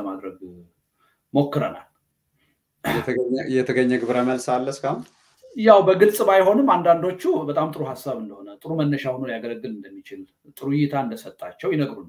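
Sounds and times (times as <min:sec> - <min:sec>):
man speaking: 0:00.0 - 0:00.7, 0:01.3 - 0:01.9, 0:02.9 - 0:12.0
man clearing throat: 0:02.8 - 0:03.3.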